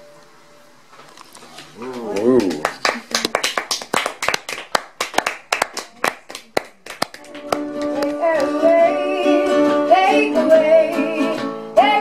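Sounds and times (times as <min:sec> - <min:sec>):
people clapping: 0:01.8 - 0:08.8.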